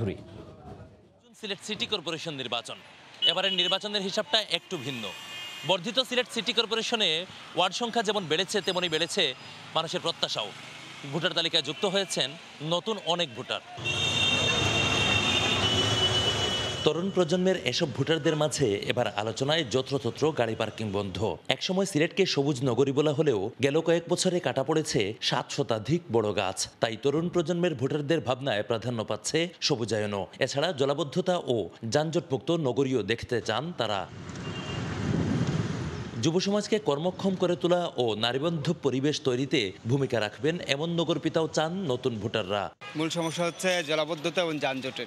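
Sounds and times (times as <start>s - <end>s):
road traffic rumble: 0.0s - 21.5s, 33.4s - 38.2s
auto-rickshaw engine rumble: 6.0s - 13.0s.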